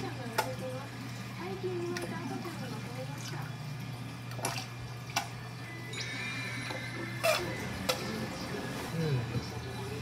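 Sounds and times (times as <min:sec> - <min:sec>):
aquarium equipment hum: 0:00.0 - 0:10.0.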